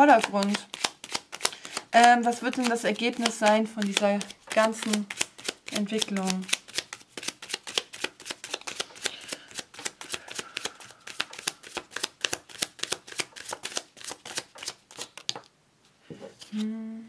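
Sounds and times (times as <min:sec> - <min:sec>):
cards being shuffled: 0:00.0 - 0:15.5, 0:16.3 - 0:16.7.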